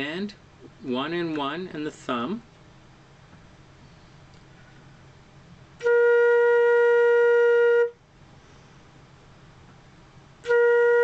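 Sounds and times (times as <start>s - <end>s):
flute playing a held note: 5.8s - 8.0s, 10.4s - 11.0s.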